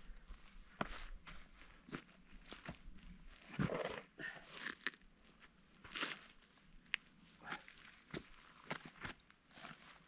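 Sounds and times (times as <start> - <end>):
boots stepping on rock: 7.4 - 9.9.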